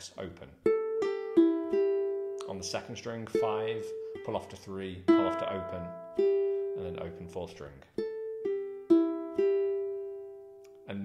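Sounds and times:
ukulele string plucked: 0.6s - 10.8s.

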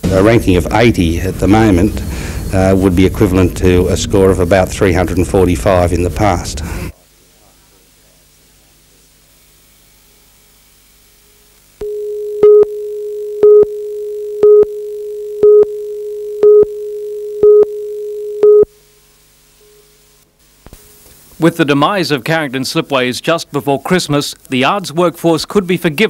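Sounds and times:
faint tape hiss: 0.0s - 26.0s
high beeps: 11.8s - 18.7s.

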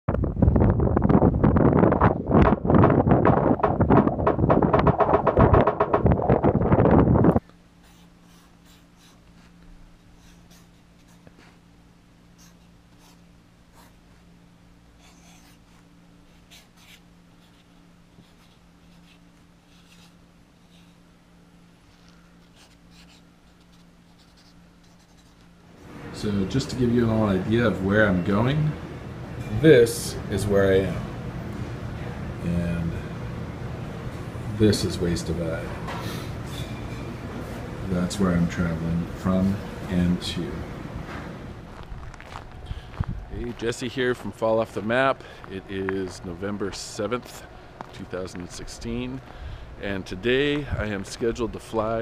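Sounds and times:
gusty wind buffeting microphone: 0.1s - 7.4s, 41.7s - 43.6s
steady low hum: 0.1s - 52.0s
marker pen scratching on paper: 3.3s - 9.6s, 10.2s - 11.6s, 12.4s - 14.0s, 15.0s - 21.0s, 22.4s - 25.5s.

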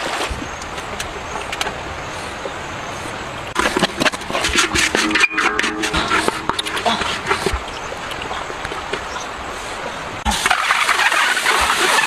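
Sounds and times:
stream water running over rocks: 0.0s - 12.0s.

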